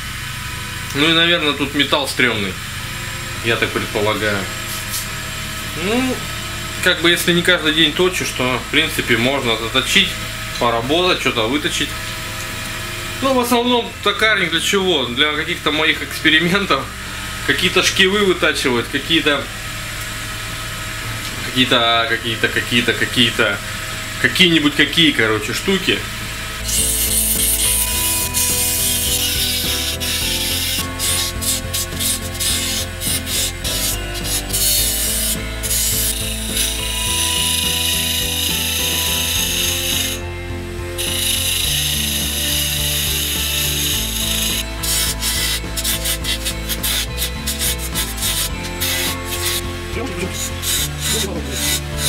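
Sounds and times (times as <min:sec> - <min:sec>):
wood lathe humming: 0:00.0 - 0:52.0
chisel scraping wood: 0:26.6 - 0:40.2, 0:41.0 - 0:52.0.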